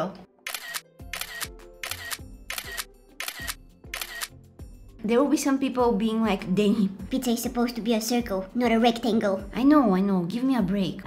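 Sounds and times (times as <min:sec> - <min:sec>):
background music with low bass: 0:00.0 - 0:11.0
camera shutter clicks: 0:00.5 - 0:04.4.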